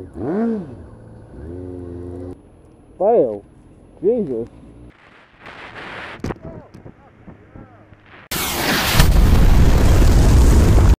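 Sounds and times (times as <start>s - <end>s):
loud explosion with low rumble: 8.3s - 11.0s.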